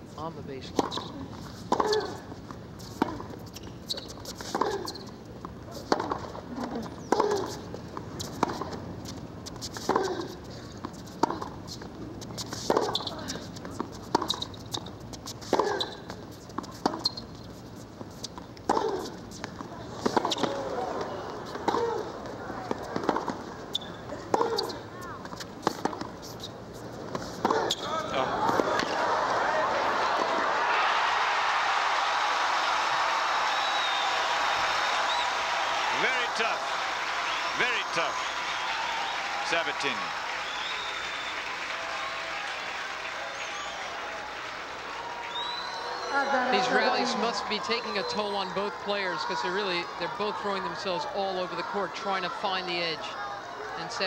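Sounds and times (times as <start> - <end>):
tennis racket hitting ball: 9.6 - 11.5, 12.3 - 14.4, 18.7 - 20.6, 21.4 - 23.5, 24.3 - 26.4
crowd applause and cheering: 28.1 - 48.3.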